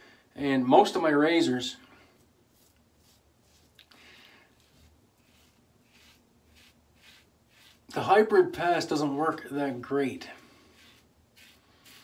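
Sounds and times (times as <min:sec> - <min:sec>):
razor scraping beard stubble: 0:04.6 - 0:08.0, 0:10.7 - 0:12.0.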